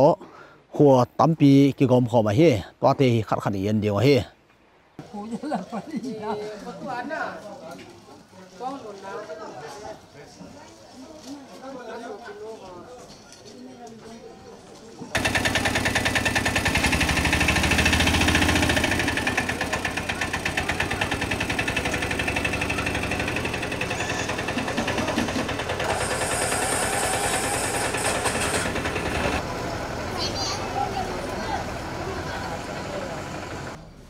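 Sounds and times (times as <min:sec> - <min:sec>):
vehicle engine running: 0:15.2 - 0:34.0.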